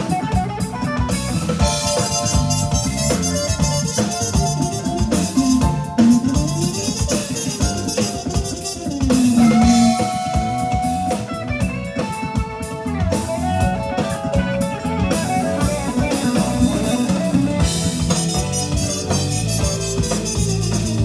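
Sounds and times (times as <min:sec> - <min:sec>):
electric guitar lines: 0:00.0 - 0:21.0
jazz-funk band playing: 0:00.0 - 0:21.0.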